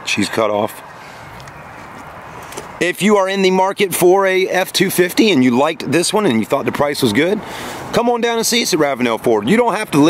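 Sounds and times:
man's voice: 0:00.0 - 0:00.9, 0:02.8 - 0:10.0
outdoor background hiss: 0:00.0 - 0:10.0.

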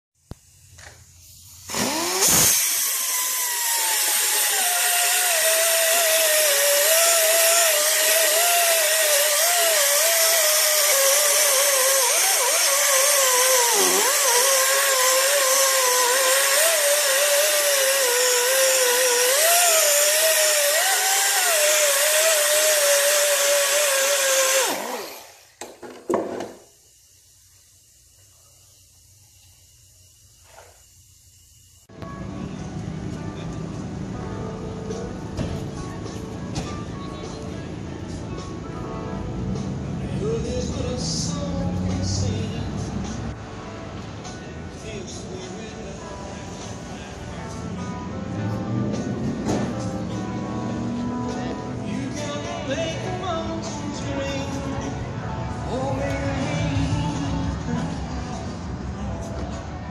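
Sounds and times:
scrubbing hiss on metal: 0:00.4 - 0:01.7, 0:26.6 - 0:31.9
power tool motor whine: 0:01.7 - 0:25.6.

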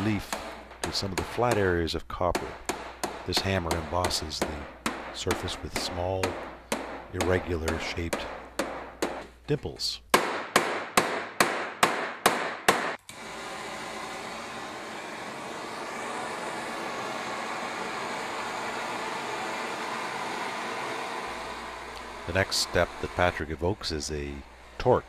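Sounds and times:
hammer striking copper sheet: 0:00.0 - 0:09.4, 0:10.1 - 0:13.0
gas torch hissing: 0:13.0 - 0:25.0.

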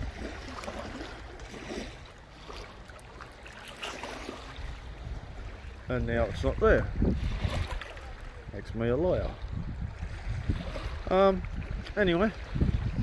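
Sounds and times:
faint water sounds: 0:00.0 - 0:13.0.

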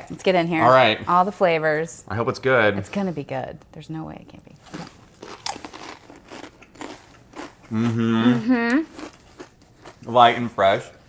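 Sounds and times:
people crunching chips: 0:04.6 - 0:10.5.

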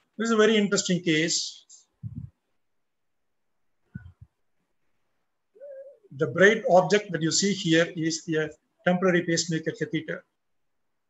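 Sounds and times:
speech: 0:00.2 - 0:01.9, 0:05.6 - 0:10.3.

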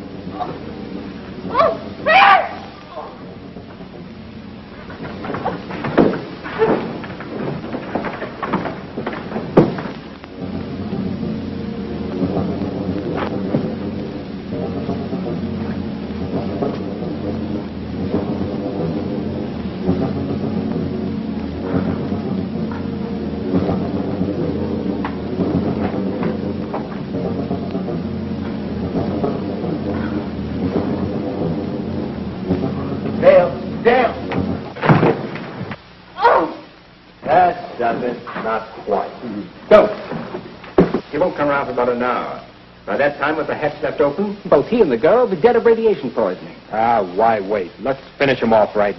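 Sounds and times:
low rumbling drone: 0:00.0 - 0:48.9
sustained tones: 0:00.0 - 0:48.9
sharp loud sounds: 0:01.4 - 0:03.4.

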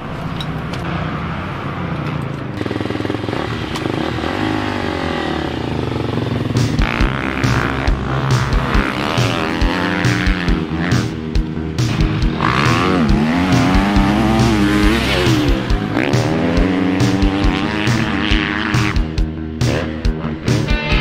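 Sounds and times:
motorbike engine revving hard: 0:02.5 - 0:21.0
music with steady beat: 0:06.3 - 0:21.0.

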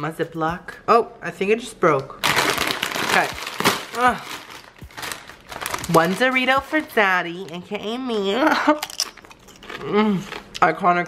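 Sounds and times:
plastic bag rustling: 0:02.2 - 0:07.5
chip bag crinkling: 0:02.2 - 0:07.8.

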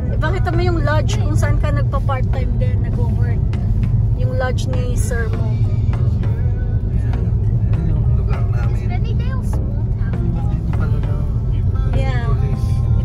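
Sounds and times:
car driving rumble: 0:00.0 - 0:13.0
music: 0:00.0 - 0:13.0.

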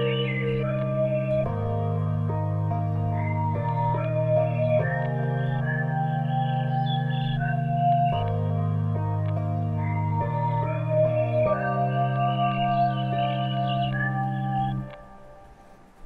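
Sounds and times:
low synth chords: 0:00.0 - 0:15.4
flute-like synth melody: 0:00.0 - 0:15.6.

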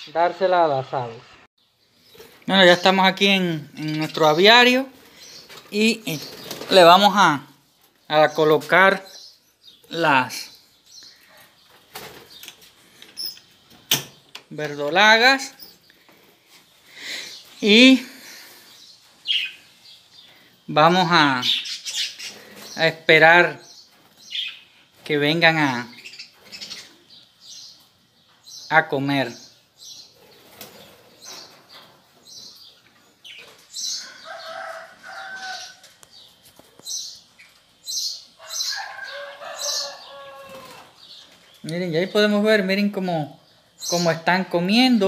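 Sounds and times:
wings fluttering: 0:04.6 - 0:08.0, 0:11.4 - 0:13.8, 0:30.1 - 0:32.1
budgerigars chirping: 0:18.2 - 0:20.3, 0:21.4 - 0:22.9.

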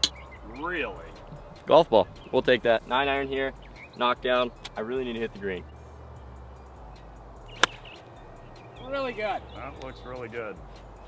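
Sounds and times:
low steady music: 0:00.0 - 0:11.0
golf club striking ball: 0:07.4 - 0:08.2.

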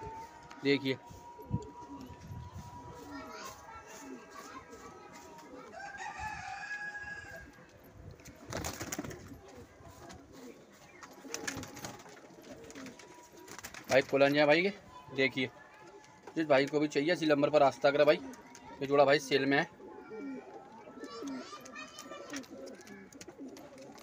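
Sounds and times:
pigeons cooing: 0:01.0 - 0:06.2, 0:08.5 - 0:14.2, 0:17.7 - 0:24.0.

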